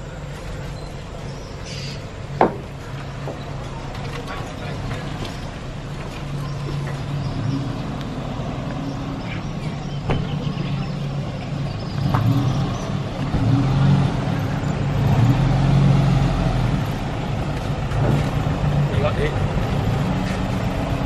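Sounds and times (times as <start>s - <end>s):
van engine running: 0.0s - 21.0s.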